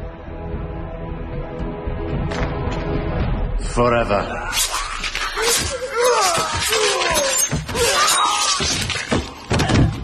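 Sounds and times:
knives slashing: 4.4 - 9.5.

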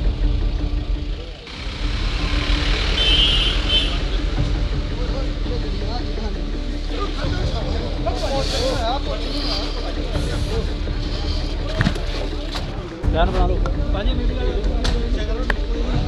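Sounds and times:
crowd voices: 0.0 - 16.0
vehicle engine rumbling: 0.0 - 16.0.

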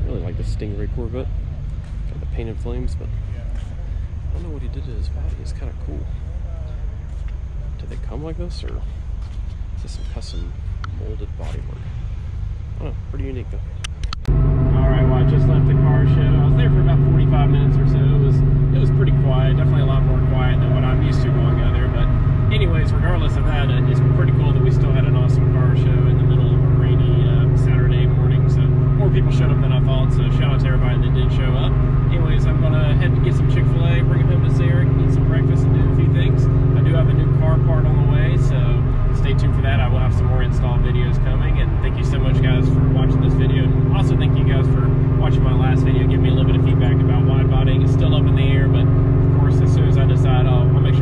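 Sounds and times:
car engine and road noise: 0.0 - 51.0.

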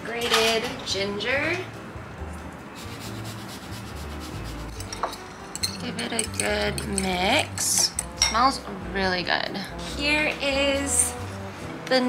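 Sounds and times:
metal spoon clicking on bowl: 4.8 - 8.4.

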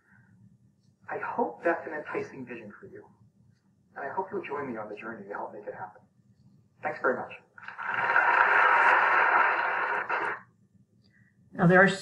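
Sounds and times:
audience applauding: 7.6 - 10.4.

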